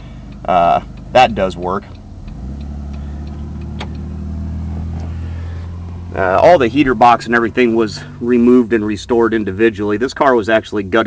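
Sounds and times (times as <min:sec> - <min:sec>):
car engine idling: 0:00.0 - 0:11.0
turn signal flasher clicking: 0:00.0 - 0:11.0.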